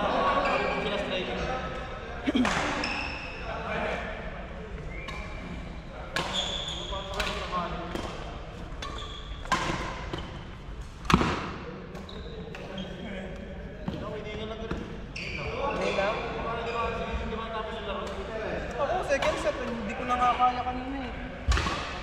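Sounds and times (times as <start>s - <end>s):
rackets hitting shuttlecock: 6.1s - 10.4s, 11.0s - 12.7s, 21.5s - 22.0s
shoes squeaking on court floor: 6.2s - 10.6s, 11.9s - 16.0s.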